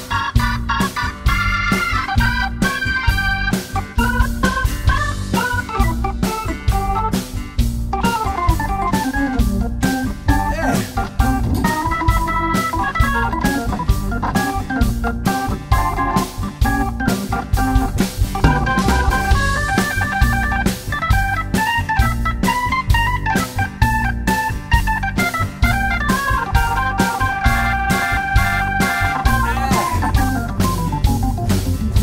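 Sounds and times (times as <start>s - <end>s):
drums: 0.0s - 32.0s
organ solo: 0.0s - 32.0s
upright bass: 0.0s - 32.0s.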